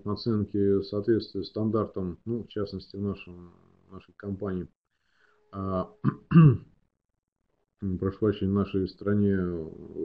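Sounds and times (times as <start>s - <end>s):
man speaking: 0.0s - 4.7s, 5.6s - 6.3s, 7.8s - 10.0s
man clearing throat: 6.0s - 6.7s.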